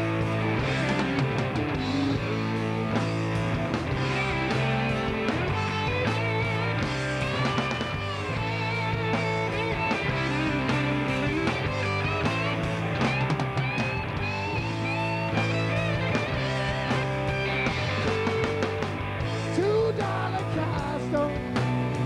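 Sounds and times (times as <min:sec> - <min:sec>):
electric guitar solo: 0:00.0 - 0:19.6
bass line: 0:00.0 - 0:22.0.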